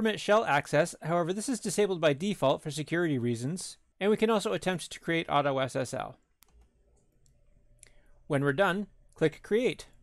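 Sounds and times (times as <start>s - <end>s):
computer mouse click: 6.4s - 8.0s.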